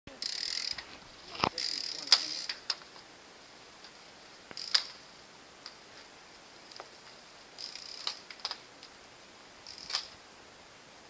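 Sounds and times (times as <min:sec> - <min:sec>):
bicycle clicks and rattles: 0:00.1 - 0:03.0, 0:03.8 - 0:05.0, 0:06.6 - 0:09.0, 0:09.6 - 0:10.2
faint high hiss: 0:00.1 - 0:11.0.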